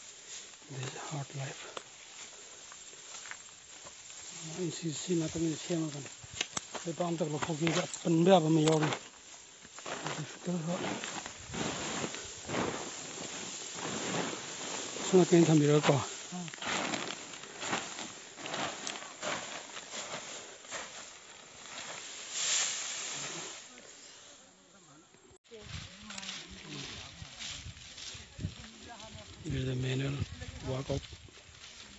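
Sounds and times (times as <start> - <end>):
footsteps on path: 0.0 - 22.2, 25.6 - 31.9
straw and undergrowth rustling: 0.0 - 31.9
person's voice: 10.1 - 11.0, 15.0 - 16.6.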